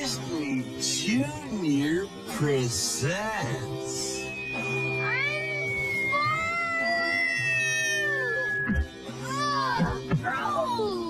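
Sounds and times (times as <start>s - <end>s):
background music: 0.0s - 11.0s
whistle-like tone gliding downward: 3.4s - 8.9s
cartoon character meowing: 5.1s - 8.7s.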